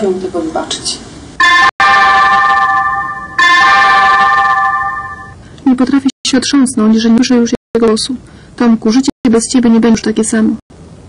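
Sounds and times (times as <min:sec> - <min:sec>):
sustained chord of high tones: 0:01.4 - 0:05.4.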